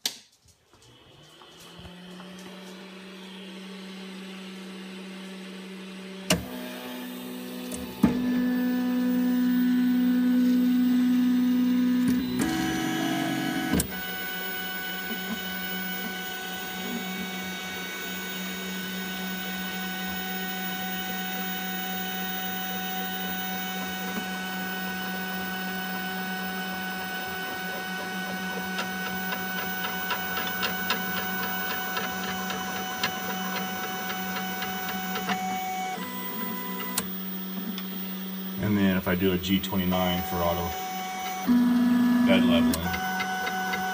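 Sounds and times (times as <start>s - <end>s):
stepper motor whine: 0.9s - 43.9s
printer motor click: 27.4s - 37.2s, 42.6s - 43.9s.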